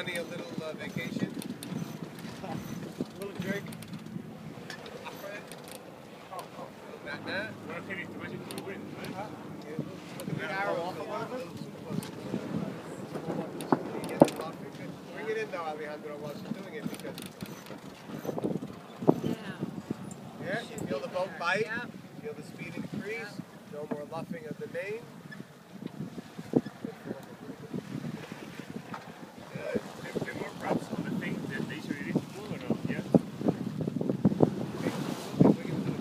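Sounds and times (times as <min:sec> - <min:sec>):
wind rushing over microphone: 0:00.0 - 0:05.4, 0:06.8 - 0:16.8, 0:17.8 - 0:36.0.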